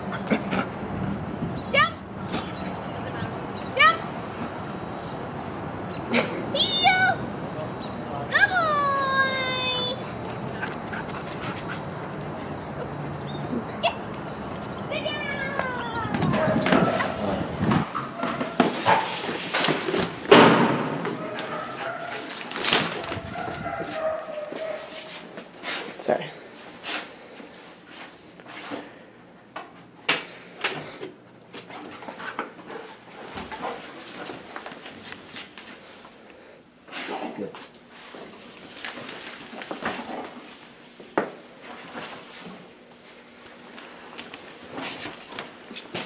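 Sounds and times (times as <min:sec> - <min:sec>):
dog whining: 0:23.0 - 0:25.1.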